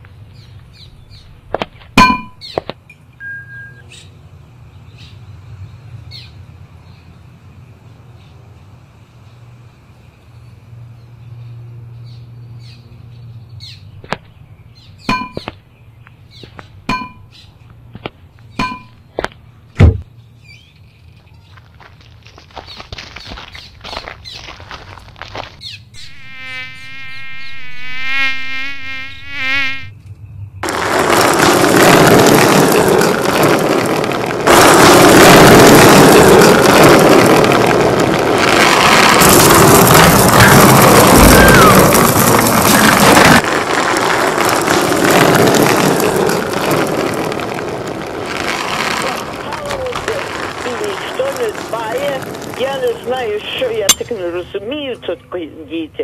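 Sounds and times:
loud dense buzzing din: 26.0 - 29.9, 30.6 - 53.2
wavering buzz: 26.0 - 30.0.

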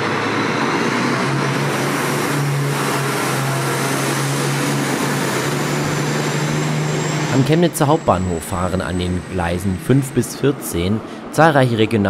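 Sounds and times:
tram electric hum: 0.0 - 12.0
tram rolling on tracks: 0.0 - 12.0.

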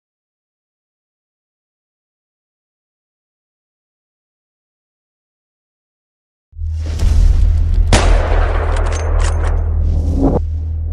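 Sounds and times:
deep rumbling drone: 6.6 - 10.9
gunshot-like blast: 7.2 - 8.9.

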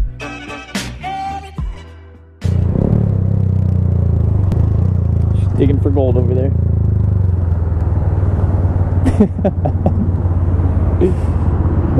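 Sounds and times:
motorcycle engine running: 2.5 - 11.9.

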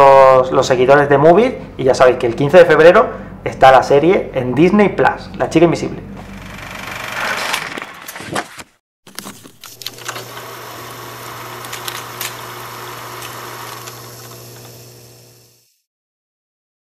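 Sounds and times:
film projector whirr: 6.2 - 8.2, 9.1 - 15.8
clicks and crackle: 11.2 - 14.8.

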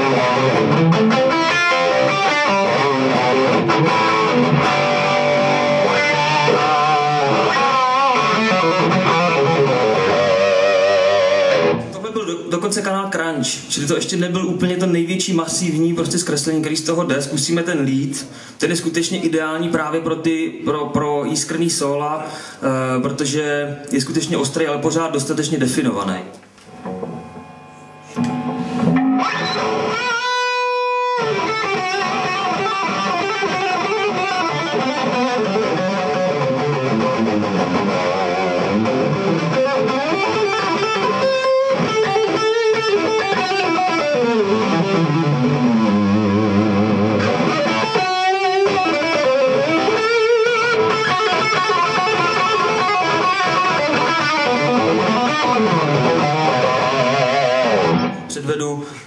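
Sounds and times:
distorted electric guitar solo: 0.0 - 12.0, 26.6 - 58.3.

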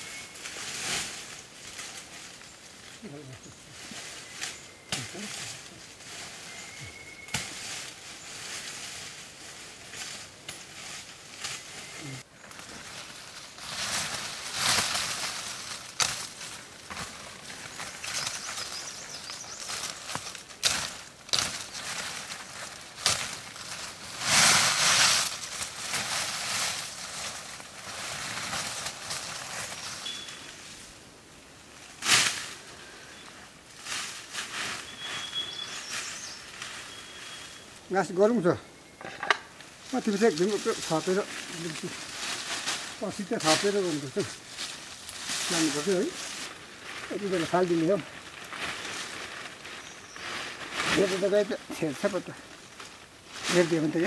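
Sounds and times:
footsteps in leaves: 0.0 - 38.7, 39.5 - 54.0
leaves rustling and crackling: 0.0 - 54.0
branches breaking: 3.8 - 30.9, 31.8 - 32.9, 39.2 - 54.0.

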